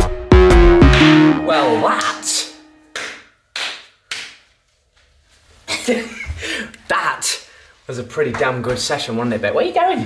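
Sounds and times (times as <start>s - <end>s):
sharp percussive hits with hiss: 0.8s - 1.4s.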